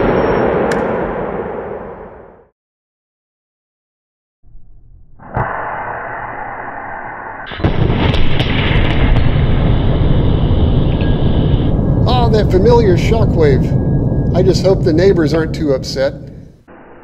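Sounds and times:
deep rumbling boom: 7.5s - 16.7s.

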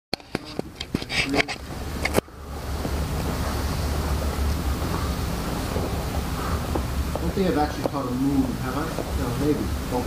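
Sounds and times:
room noise rumble and hiss: 0.2s - 10.0s.

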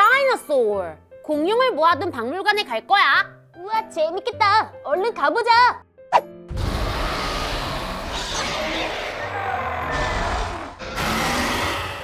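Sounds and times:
toy dinosaur roars: 6.6s - 12.0s.

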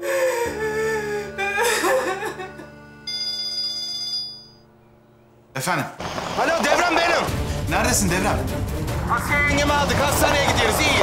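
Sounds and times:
woman sobbing and crying out: 0.0s - 2.9s
soft background music: 0.0s - 11.0s
phone ringtone: 3.1s - 4.7s.

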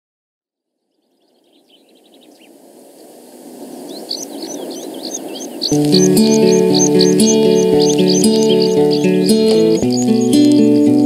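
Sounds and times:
small birds chirping: 0.8s - 11.0s.

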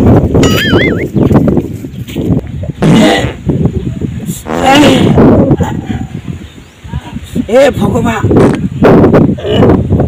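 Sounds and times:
low rumbling microphone noise: 0.0s - 10.0s.

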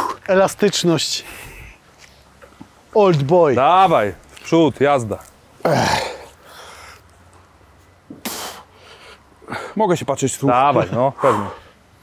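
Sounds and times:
man exhaling forcefully: 8.2s - 8.7s.

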